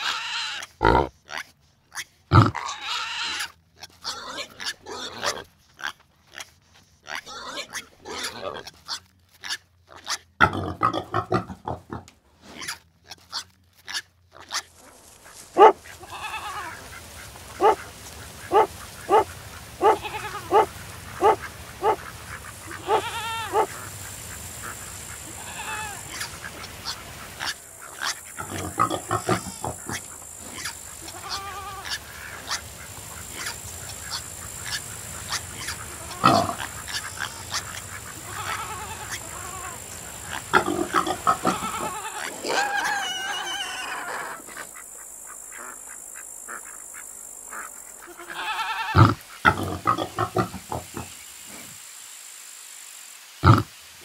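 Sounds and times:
pigs grunting and squealing: 0.0s - 44.7s, 48.1s - 51.7s, 53.4s - 53.7s
dog barking: 15.5s - 15.9s, 17.6s - 17.9s, 18.5s - 22.0s, 22.9s - 23.8s.

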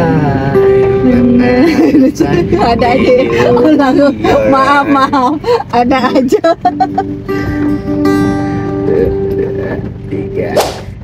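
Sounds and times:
acoustic guitar chord ringing: 0.0s - 11.0s
sharp swish: 10.6s - 10.9s.

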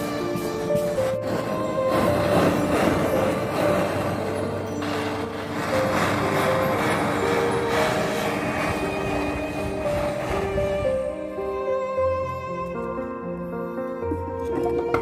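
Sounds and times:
blowtorch flame rushing: 0.0s - 12.1s
background music melody: 0.0s - 15.0s.

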